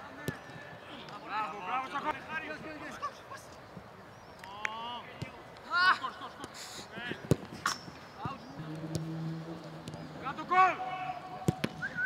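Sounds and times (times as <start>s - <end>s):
footballers shouting: 9.5s - 12.0s
football being kicked: 11.4s - 11.9s.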